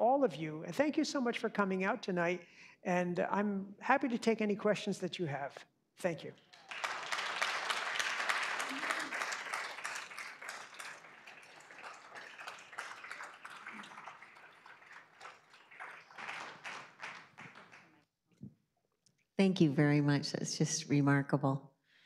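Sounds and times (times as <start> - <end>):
audience applauding: 6.4 - 18.0.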